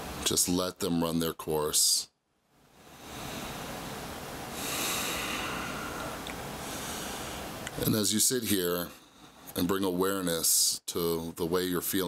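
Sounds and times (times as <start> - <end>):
slow breathing close up: 2.8 - 3.8, 4.5 - 7.6, 8.9 - 9.6.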